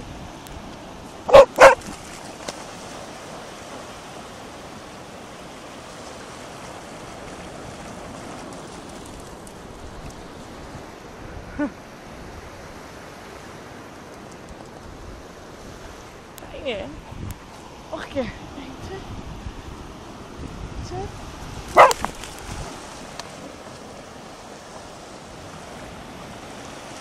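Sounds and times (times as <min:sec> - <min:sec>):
surf: 0:00.0 - 0:27.0
wind: 0:00.0 - 0:27.0
dog barking: 0:01.3 - 0:01.8, 0:21.7 - 0:22.0
dog yip: 0:01.3 - 0:01.8, 0:21.8 - 0:22.0.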